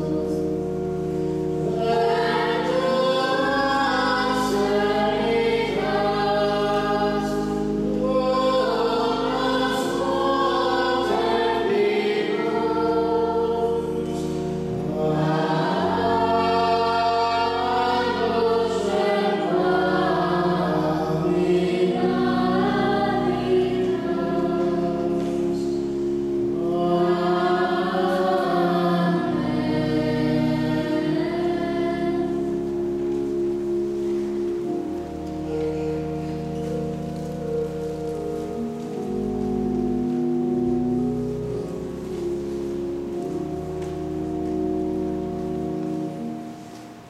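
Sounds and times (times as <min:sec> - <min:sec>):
choir singing: 0:00.0 - 0:46.8
organ chords: 0:00.0 - 0:47.0.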